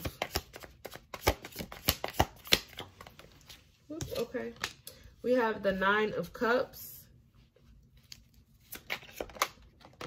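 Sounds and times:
playing cards being shuffled: 0.0 - 4.8, 8.0 - 10.0.

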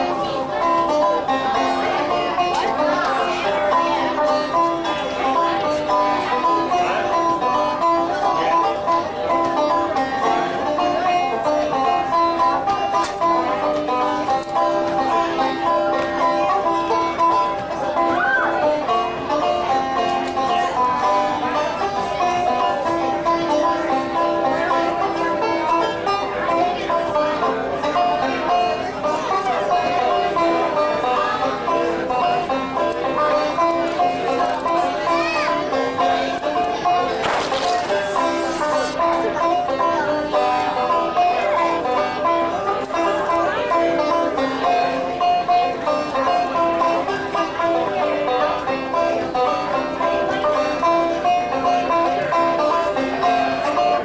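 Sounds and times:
banjo picking: 0.0 - 54.0.

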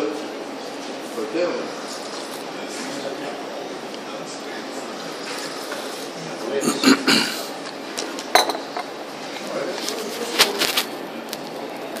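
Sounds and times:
room background noise: 0.0 - 12.0
ceramic dishes clinking: 8.3 - 8.9.

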